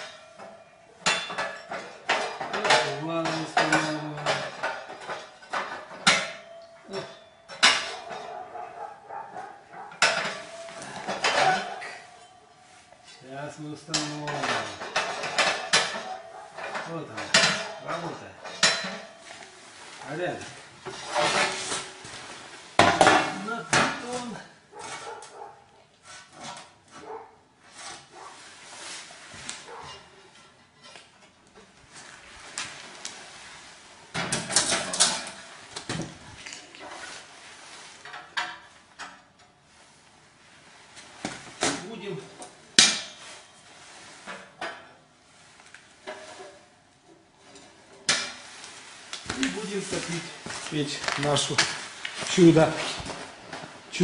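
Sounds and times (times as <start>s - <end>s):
metal stove parts clanking: 0.0s - 12.4s, 13.1s - 25.5s, 34.1s - 37.0s, 41.6s - 43.5s.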